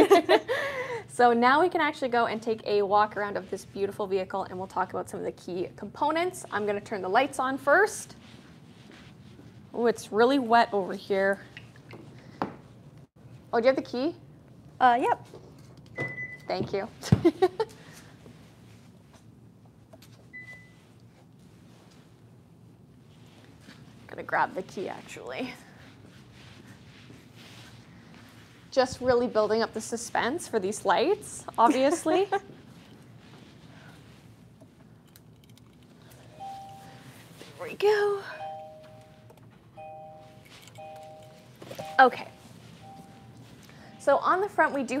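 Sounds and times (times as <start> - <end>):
room hum: 0.0 - 45.0
car warning chime: 36.3 - 37.1, 38.2 - 44.4
high-pitched electronic beep: 39.8 - 44.2.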